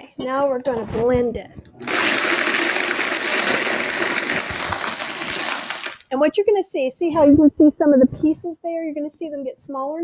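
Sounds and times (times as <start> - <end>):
blender crushing ice: 1.8 - 6.1.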